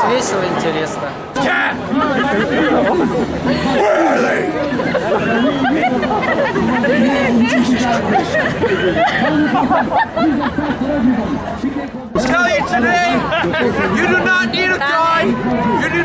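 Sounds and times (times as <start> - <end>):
people talking at once: 0.0 - 16.0.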